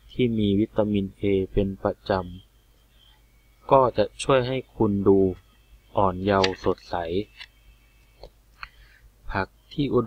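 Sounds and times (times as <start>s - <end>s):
person speaking: 3.7s - 7.5s.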